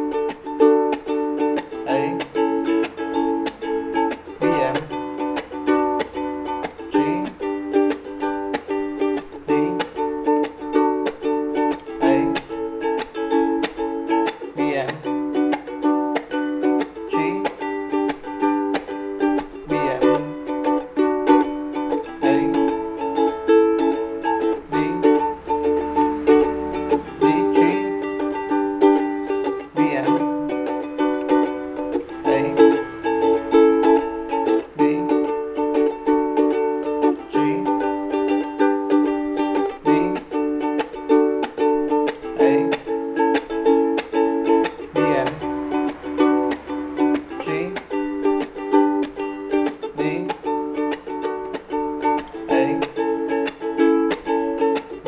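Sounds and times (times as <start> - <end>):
ukulele strumming: 0.0 - 55.0.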